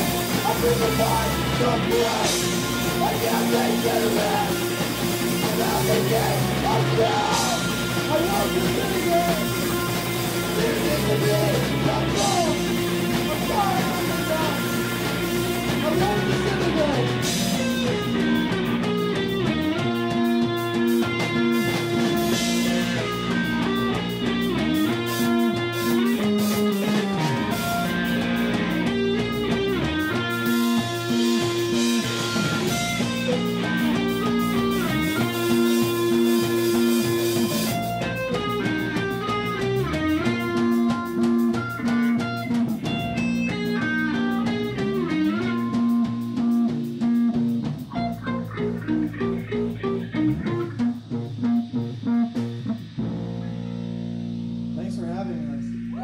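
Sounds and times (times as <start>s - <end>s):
electric guitar bending notes: 0.0s - 56.0s
live rock band playing: 0.0s - 56.0s.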